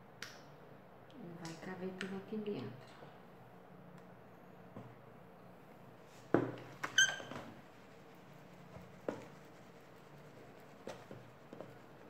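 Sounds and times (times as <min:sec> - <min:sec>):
faint steady hum: 0:00.0 - 0:12.0
plastic squeaking: 0:06.8 - 0:07.6.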